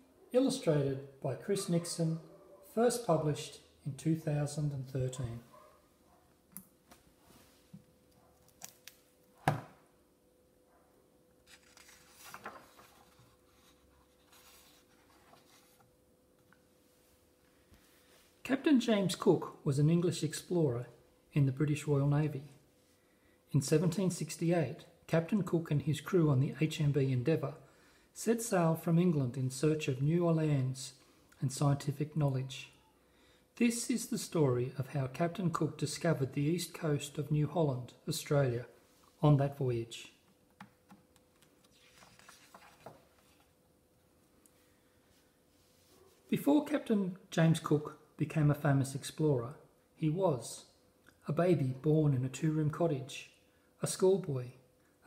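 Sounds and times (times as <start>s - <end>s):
faint steady hum: 0.0s - 55.0s
paper page turning: 8.4s - 9.1s, 11.4s - 15.9s, 41.3s - 43.5s.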